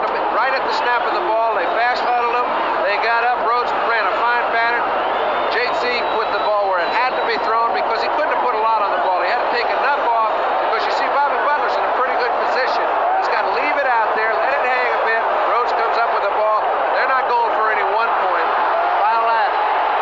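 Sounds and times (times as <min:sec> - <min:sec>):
man speaking: 0:00.0 - 0:04.8, 0:05.5 - 0:19.6
stadium crowd noise: 0:00.0 - 0:20.0.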